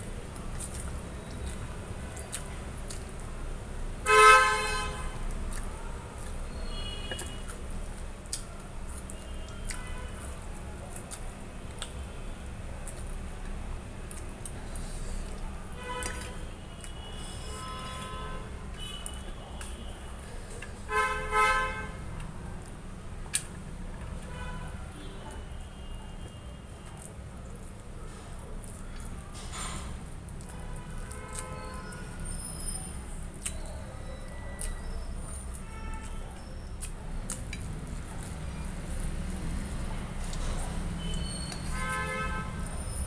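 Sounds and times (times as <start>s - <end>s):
vehicle horn honk: 4.1s - 5.2s, 17.0s - 19.0s, 20.9s - 22.0s, 41.7s - 42.6s.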